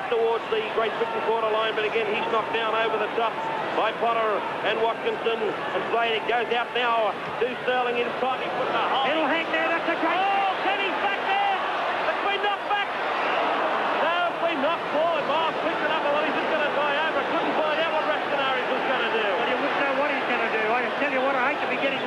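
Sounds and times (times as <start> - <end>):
stadium crowd shouting and cheering: 0.0 - 22.0.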